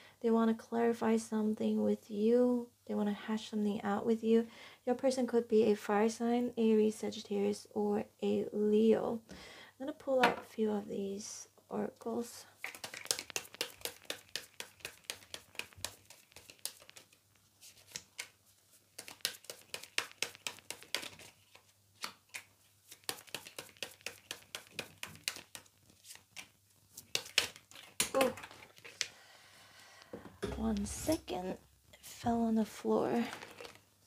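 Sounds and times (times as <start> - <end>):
cards being shuffled: 12.6 - 29.1.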